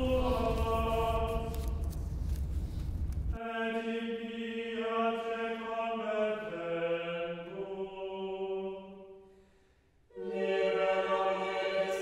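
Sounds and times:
slow sung chant: 0.0 - 1.8, 3.4 - 9.3
low rumble: 0.0 - 3.4.

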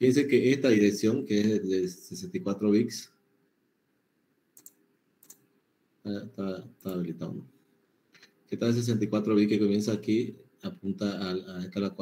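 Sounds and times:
faint computer clicks: 4.6 - 5.5, 6.8 - 7.1.

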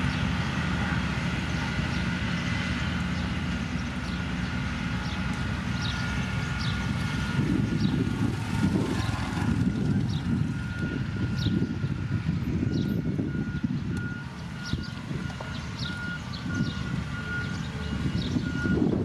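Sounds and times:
diesel engines rumbling: 0.0 - 19.0.

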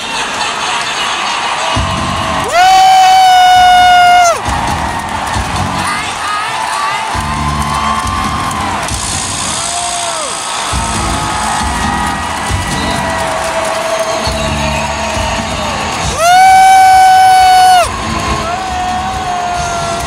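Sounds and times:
arena crowd noise: 0.0 - 20.0
loud music with low beat: 1.8 - 2.6, 3.7 - 5.9, 10.8 - 13.5.

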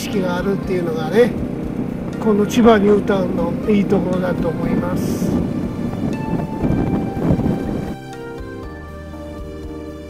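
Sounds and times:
faint background music: 0.0 - 10.0
scooter riding rumble: 0.0 - 10.0
wind buffeting microphone: 0.0 - 10.0.

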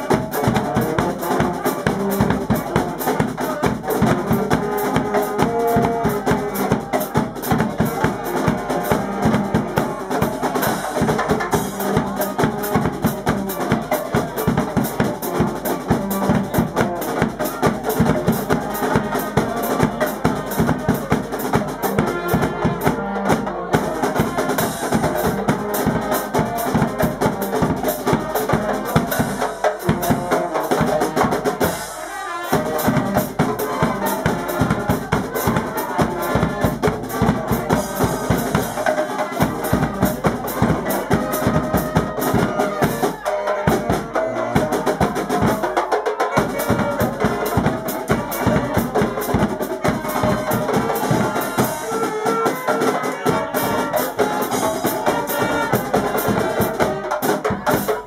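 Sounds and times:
bass drum beat: 0.0 - 58.0
saxophones and wind instruments: 0.0 - 58.0
snare drum: 0.0 - 58.0.

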